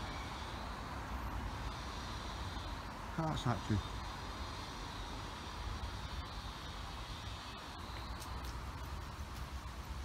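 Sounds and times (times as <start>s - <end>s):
light hiss: 0.0s - 10.0s.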